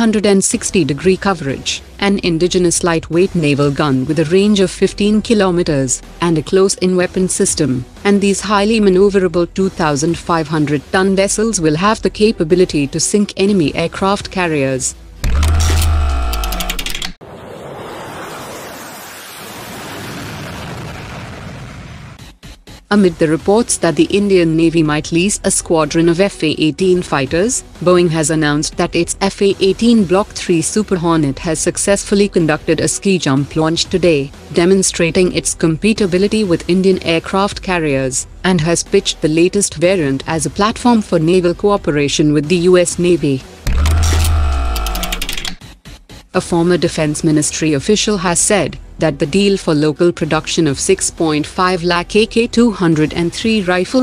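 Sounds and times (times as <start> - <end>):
rapid clicks: 15.2 - 17.2, 43.7 - 45.6.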